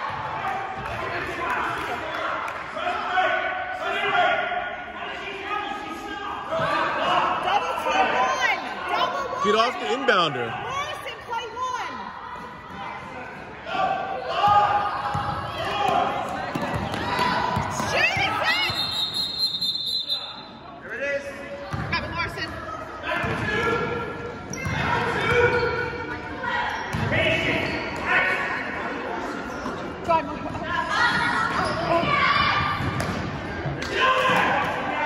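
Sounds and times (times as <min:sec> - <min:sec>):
basketball bouncing on gym floor: 0:21.7 - 0:22.5.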